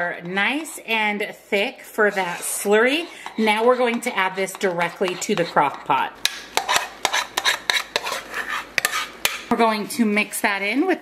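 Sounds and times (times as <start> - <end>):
utensil scraping a saucepan: 1.6 - 9.5.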